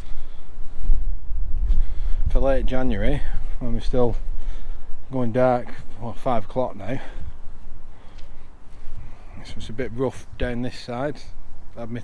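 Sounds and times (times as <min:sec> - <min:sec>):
faint outdoor hiss: 0:00.0 - 0:12.0
wind buffeting microphone: 0:00.0 - 0:12.0.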